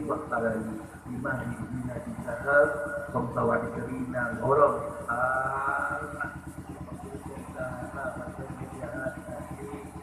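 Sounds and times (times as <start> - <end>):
small engine idling: 0.0 - 10.0
soft speech: 0.0 - 10.0.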